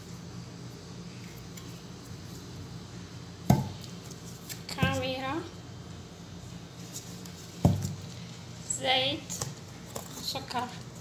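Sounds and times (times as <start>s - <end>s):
steady low hum: 0.0s - 11.0s
person speaking: 4.7s - 5.5s.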